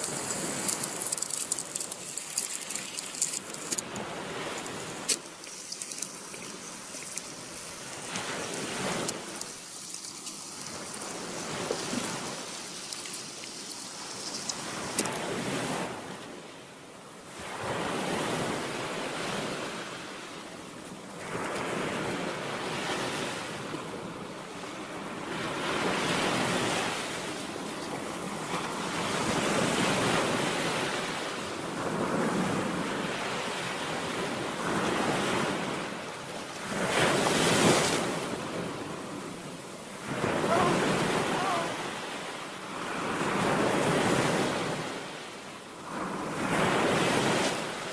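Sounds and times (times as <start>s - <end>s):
sea waves rushing in: 0.0s - 47.9s.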